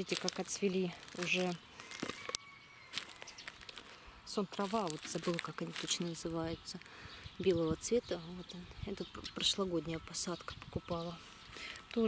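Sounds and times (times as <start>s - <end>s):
footsteps on wood-chip mulch: 0.0s - 6.9s.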